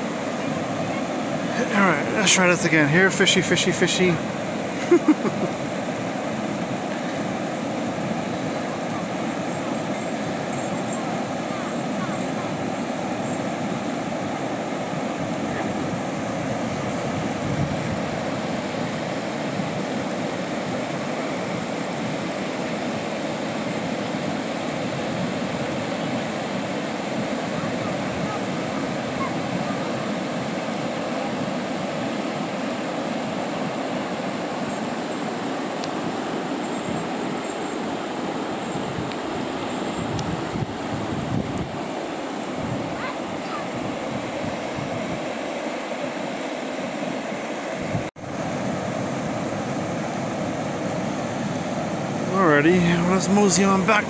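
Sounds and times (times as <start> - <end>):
water rushing over rocks: 0.0 - 54.0.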